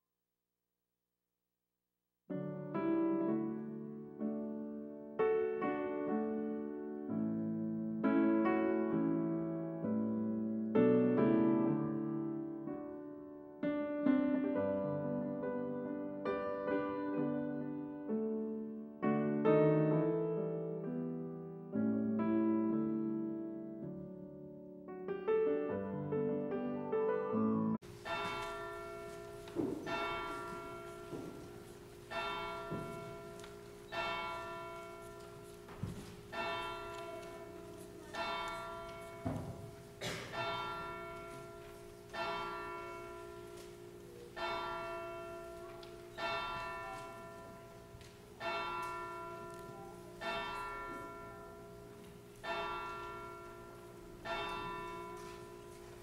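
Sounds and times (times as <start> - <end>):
church bell tolling: 27.8 - 56.0.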